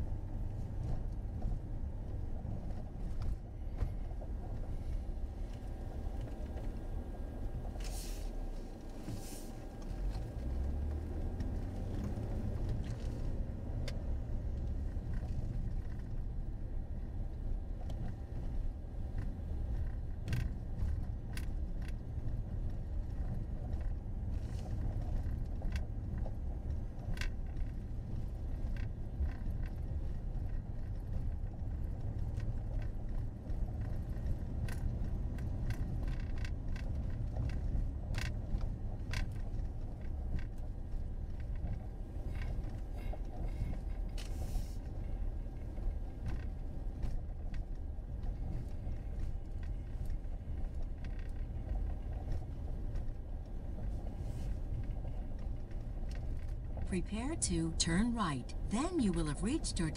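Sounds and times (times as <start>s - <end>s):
car road and engine rumble: 0.0s - 59.9s.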